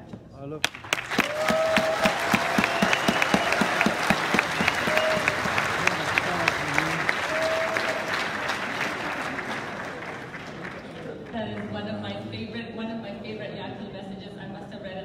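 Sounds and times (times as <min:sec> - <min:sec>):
audience applauding: 0:00.6 - 0:11.7.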